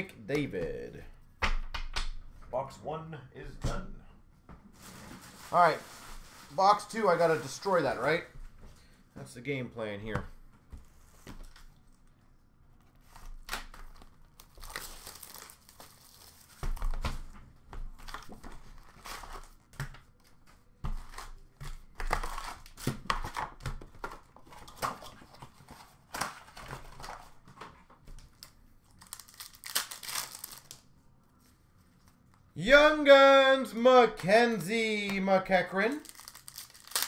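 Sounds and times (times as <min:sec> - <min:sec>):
wrapped packs crinkling: 0:13.4 - 0:16.9, 0:28.4 - 0:30.9, 0:35.9 - 0:37.0.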